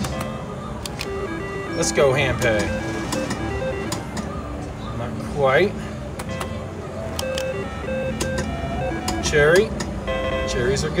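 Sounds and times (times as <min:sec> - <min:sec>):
slot machine button clicks: 0:00.0 - 0:04.4, 0:06.2 - 0:10.0
electronic beeping tones: 0:00.2 - 0:04.5, 0:07.2 - 0:11.0.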